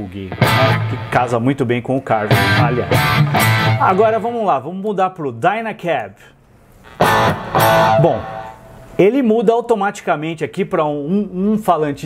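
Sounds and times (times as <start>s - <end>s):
electric guitar chords ringing: 0.2s - 1.3s, 2.3s - 4.2s, 7.0s - 8.9s.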